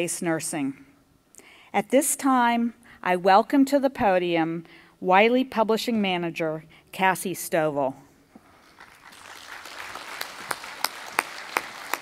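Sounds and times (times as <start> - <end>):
audience applause: 8.8 - 12.0.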